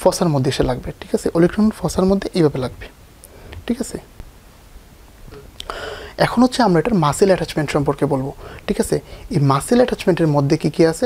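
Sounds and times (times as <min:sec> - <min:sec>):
man speaking softly: 0:03.6 - 0:04.1.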